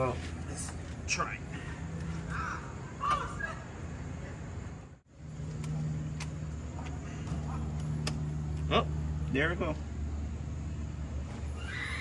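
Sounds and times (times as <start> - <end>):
engine idling: 0.0 - 11.8.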